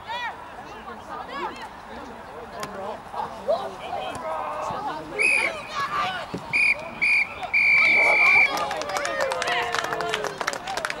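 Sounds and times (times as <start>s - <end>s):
voices of players and spectators: 0.0s - 11.0s
referee's whistle blasts: 5.2s - 5.6s, 6.5s - 8.6s.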